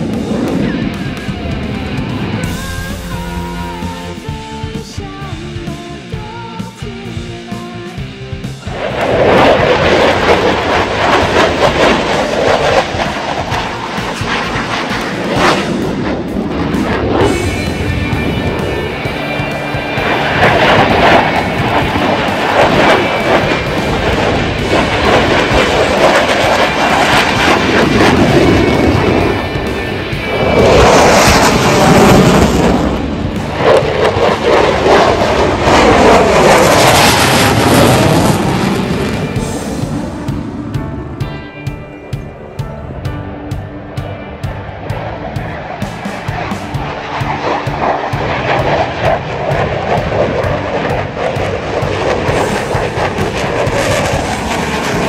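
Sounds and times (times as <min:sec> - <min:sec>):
fighter jet engine roaring: 0:00.0 - 0:07.2, 0:07.9 - 0:55.0
background music: 0:00.0 - 0:55.0.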